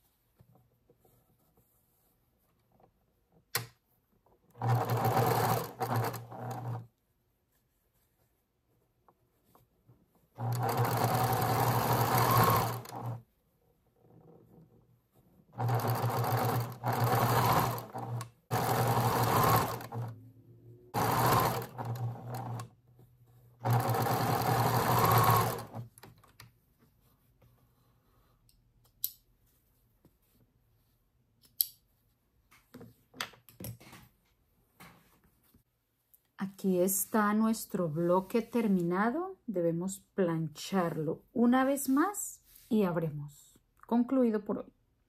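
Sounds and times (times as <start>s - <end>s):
sewing machine stitching: 4.5s - 6.9s, 10.4s - 13.2s, 15.6s - 20.3s, 20.9s - 22.8s, 23.6s - 26.0s.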